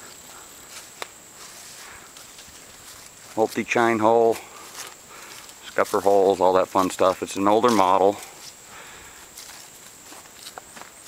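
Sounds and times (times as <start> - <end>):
faint footsteps outdoors: 0.0 - 11.0.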